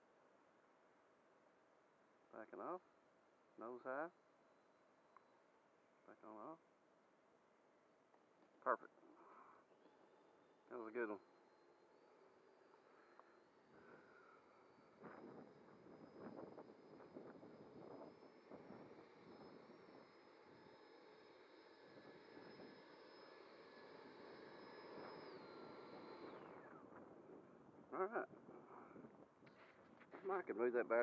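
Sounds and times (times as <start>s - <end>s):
electric ducted fan whine: 7.5s - 31.0s.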